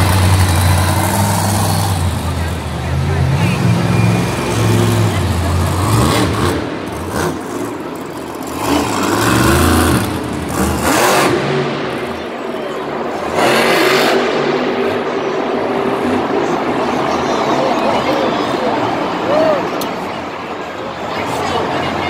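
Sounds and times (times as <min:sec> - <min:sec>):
monster truck engine revving: 0:00.0 - 0:20.1.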